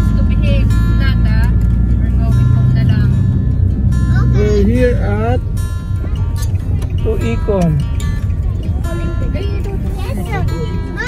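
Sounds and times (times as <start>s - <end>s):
car rumble: 0.0s - 11.0s.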